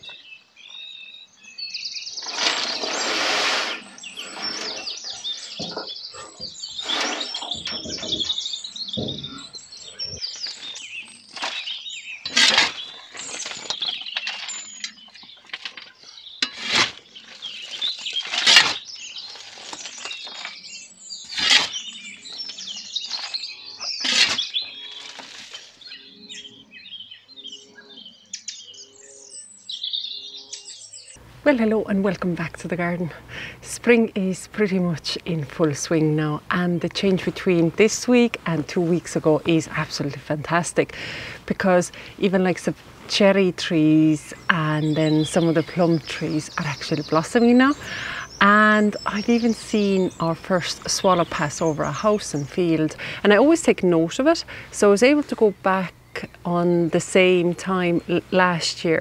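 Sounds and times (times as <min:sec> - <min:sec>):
birds chirping and singing: 0:00.0 - 0:59.0
shovel and rake crunching mulch: 0:02.2 - 0:05.7, 0:06.8 - 0:08.2, 0:10.3 - 0:25.9.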